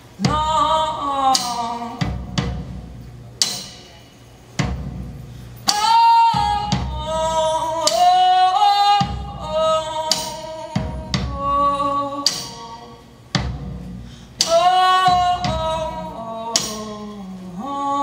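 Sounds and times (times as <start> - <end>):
woman singing long held notes: 0.2 - 2.2, 5.7 - 13.2, 14.4 - 18.0
slow heavy drum hits: 0.2 - 8.2, 9.0 - 17.0.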